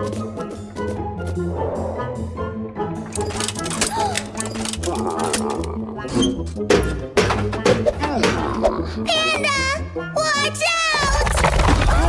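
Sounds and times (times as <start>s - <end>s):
armour clicking and clanking: 3.0s - 8.4s.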